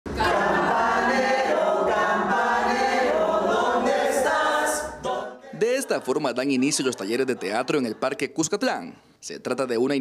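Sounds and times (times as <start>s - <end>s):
group singing unaccompanied: 0.1s - 6.1s.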